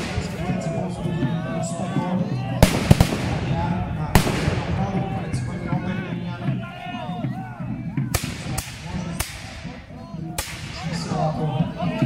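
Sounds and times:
musket shots: 2.6s - 4.8s.

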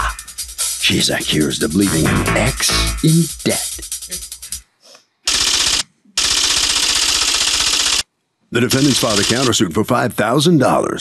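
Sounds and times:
typewriter-style clicking effect: 5.3s - 8.0s, 8.7s - 9.5s.

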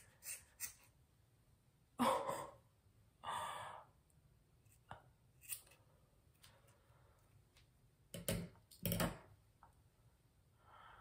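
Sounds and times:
woman sighing: 2.0s - 2.6s.

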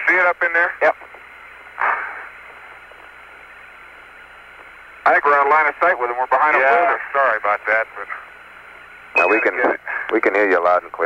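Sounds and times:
radio static: 0.0s - 3.6s, 4.6s - 8.4s, 9.1s - 11.0s.

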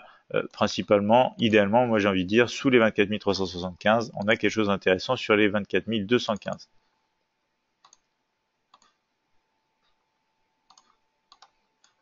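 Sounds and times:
computer mouse clicks: 7.8s - 9.0s, 10.7s - 12.0s.

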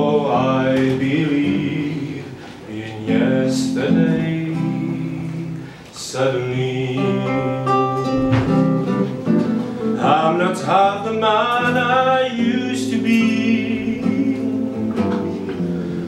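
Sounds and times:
classical guitar plucked: 0.0s - 16.0s
man singing with vibrato: 0.0s - 16.0s.

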